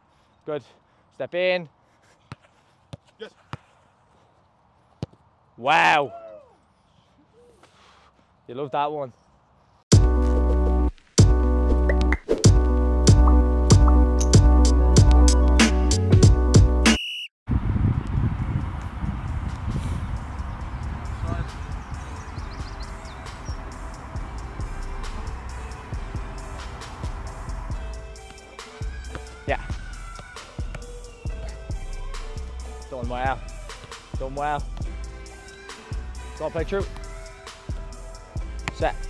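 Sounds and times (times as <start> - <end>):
football kicked on artificial turf: 2.3 - 3.6, 38.6 - 38.8
wind rumble on microphone: 17.5 - 25.4.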